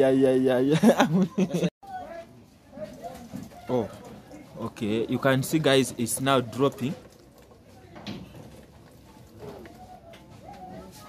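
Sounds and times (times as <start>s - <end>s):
faint voices: 1.4s - 11.0s.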